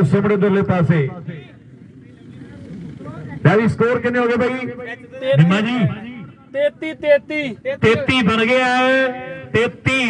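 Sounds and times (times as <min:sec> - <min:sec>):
faint distant voices: 0:00.0 - 0:10.0
man talking: 0:00.0 - 0:10.0
open-air background noise: 0:00.0 - 0:10.0.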